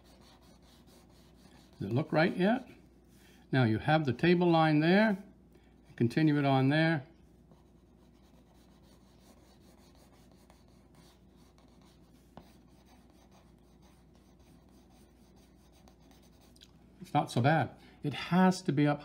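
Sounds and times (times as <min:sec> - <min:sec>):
pencil scratching on paper: 0:00.0 - 0:02.7, 0:07.5 - 0:16.6.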